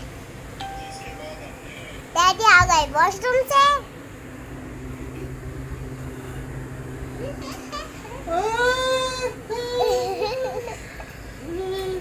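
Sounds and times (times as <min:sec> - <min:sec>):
steady beep tone: 0:00.6 - 0:02.1.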